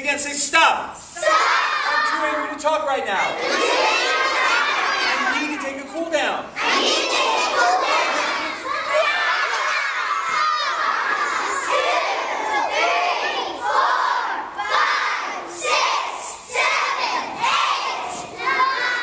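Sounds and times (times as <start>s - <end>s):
young children shouting: 1.2s - 2.6s, 3.2s - 5.9s, 6.6s - 19.0s.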